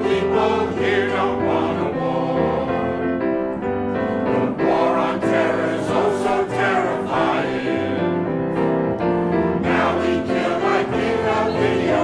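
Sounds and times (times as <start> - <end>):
mixed choir singing in harmony: 0.0 - 12.0.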